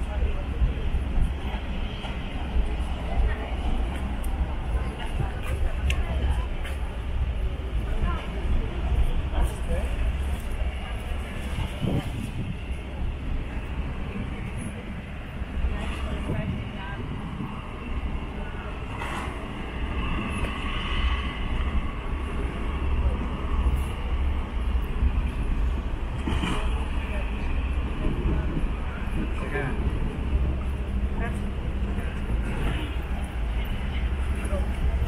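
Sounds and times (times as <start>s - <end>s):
wind buffeting microphone: 0.1s - 35.0s.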